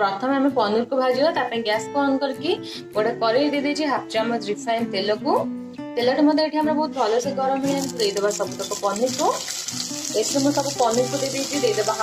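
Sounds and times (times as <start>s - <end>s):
cheese sizzling in hot oil: 7.7s - 12.0s.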